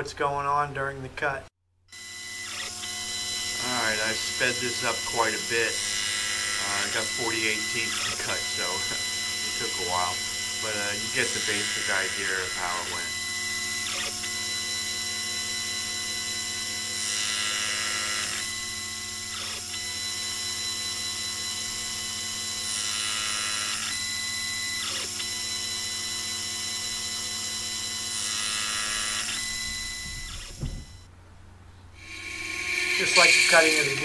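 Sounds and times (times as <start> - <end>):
thin high whine: 2.0 - 16.7, 31.9 - 34.0
motor humming: 2.0 - 31.1, 32.0 - 34.0
loud hissing: 32.0 - 34.0.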